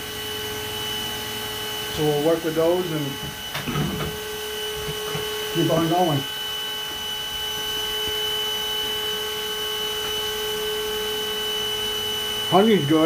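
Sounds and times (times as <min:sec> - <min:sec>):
electric motor hum with high whine: 0:00.0 - 0:13.0.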